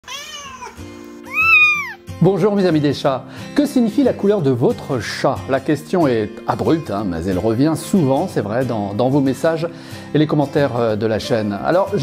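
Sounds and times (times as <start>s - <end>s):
cat meowing: 0.0s - 2.0s
background music: 0.1s - 12.0s.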